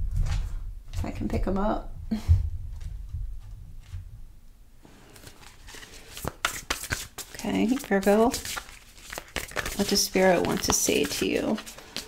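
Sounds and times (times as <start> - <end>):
cards rustling: 5.1 - 12.0.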